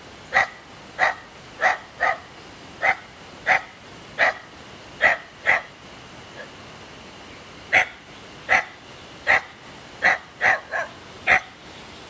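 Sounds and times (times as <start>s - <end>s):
dog barking: 0.3s - 2.2s, 2.8s - 4.4s, 5.0s - 5.7s, 7.7s - 11.6s.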